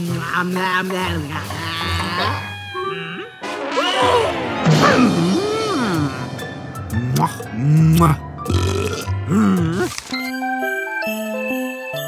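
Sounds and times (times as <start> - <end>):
background music: 0.0 - 12.0
cartoon burp: 7.1 - 10.0.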